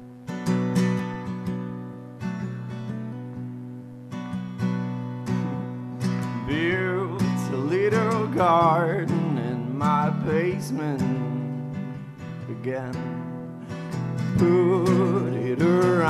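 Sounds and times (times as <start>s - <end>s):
guitar strumming chords: 0.0s - 16.0s
person singing: 6.3s - 16.0s.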